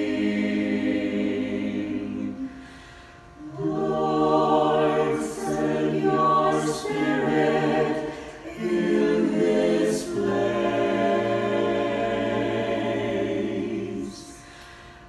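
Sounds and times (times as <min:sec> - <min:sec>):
choir singing a cappella: 0:00.0 - 0:15.0.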